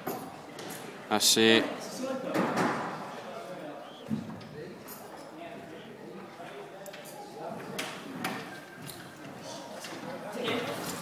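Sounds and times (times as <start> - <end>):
indistinct voices in echoing hall: 0.0 - 11.0.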